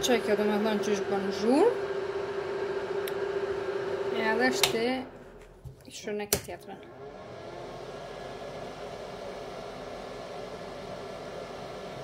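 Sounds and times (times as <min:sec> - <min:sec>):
suction fan whirring: 0:00.0 - 0:05.7, 0:06.9 - 0:12.0.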